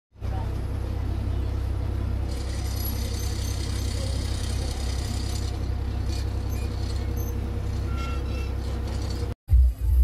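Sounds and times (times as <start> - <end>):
bus diesel engine throbbing: 0.1 - 10.0.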